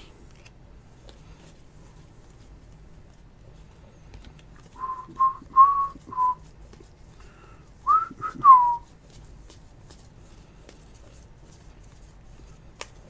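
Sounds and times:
person whistling a tune: 4.8s - 6.4s, 7.8s - 8.8s.

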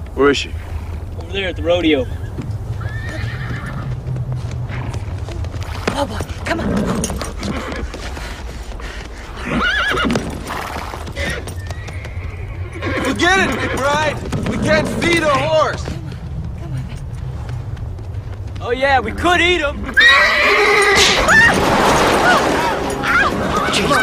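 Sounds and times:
low rumble: 0.0s - 7.3s
hoofbeats: 0.0s - 24.0s
horse whinnying: 1.4s - 3.9s, 6.5s - 7.9s, 9.4s - 15.7s, 19.8s - 24.0s.

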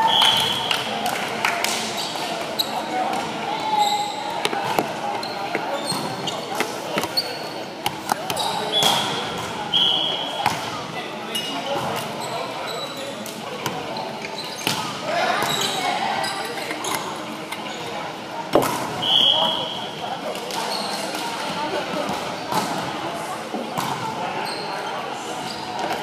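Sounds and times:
players' voices: 0.0s - 26.0s
sneakers squeaking on court: 2.0s - 17.9s, 23.7s - 26.0s.

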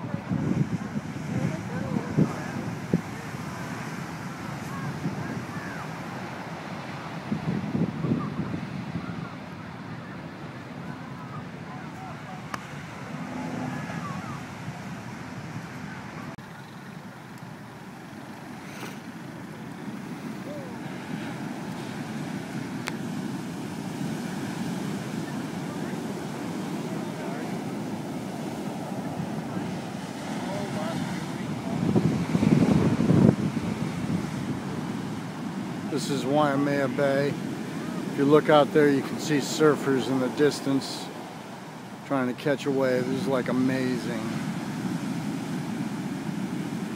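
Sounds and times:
ocean surf breaking on beach: 0.0s - 46.9s.

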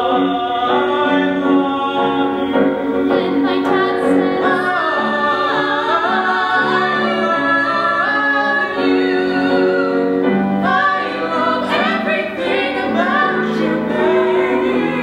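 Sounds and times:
singers harmonizing a slow ballad: 0.0s - 15.0s.

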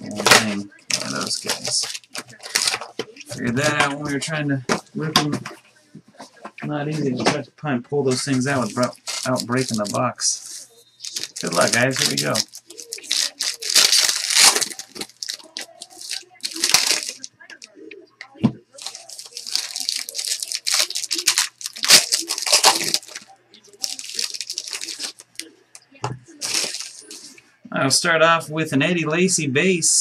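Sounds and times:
wrapper tearing and crinkling: 0.1s - 2.9s, 8.2s - 17.7s, 18.8s - 25.5s, 26.4s - 27.3s.

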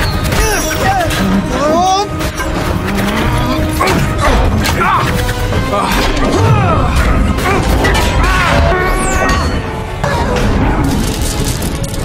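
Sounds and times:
action score music: 0.0s - 12.0s.

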